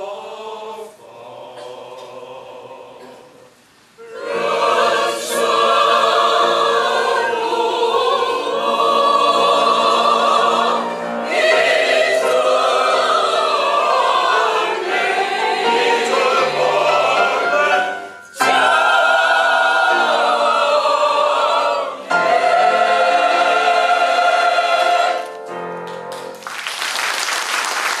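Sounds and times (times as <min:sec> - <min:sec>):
mixed choir singing: 0:00.0 - 0:25.5
applause: 0:25.9 - 0:28.0.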